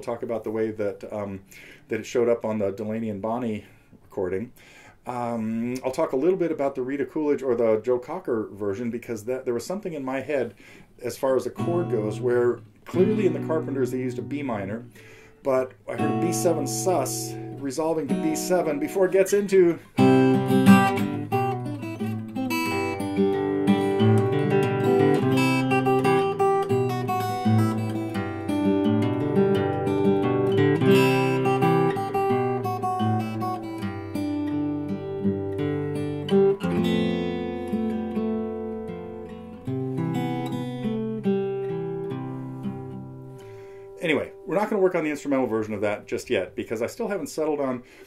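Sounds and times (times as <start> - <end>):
fingerstyle acoustic guitar: 11.6 - 44.7.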